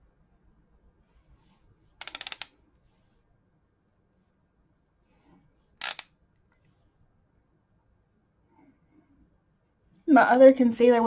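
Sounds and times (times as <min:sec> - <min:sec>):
rapid rattle of clicks: 0:02.0 - 0:02.6.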